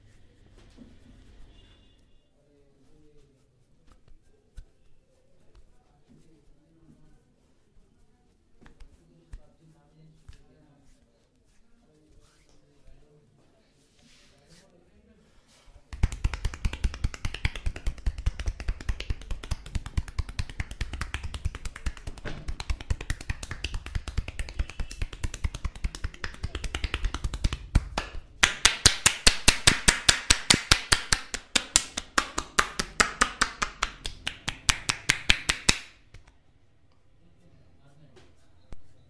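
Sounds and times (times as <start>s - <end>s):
hands tapping on bare back: 15.9s - 35.9s.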